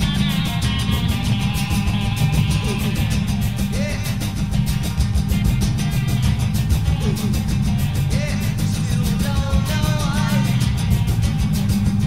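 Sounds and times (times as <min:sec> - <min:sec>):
rock music with guitar and drums: 0:00.0 - 0:08.2.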